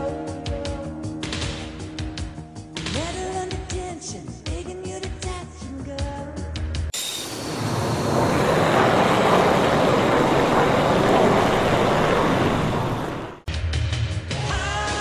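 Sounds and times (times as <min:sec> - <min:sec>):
model jet passing low: 0:07.0 - 0:13.5.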